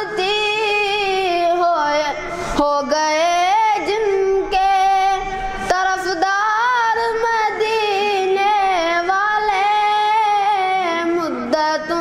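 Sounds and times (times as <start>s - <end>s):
boy singing unaccompanied: 0.0s - 12.0s
breath: 2.2s - 2.6s.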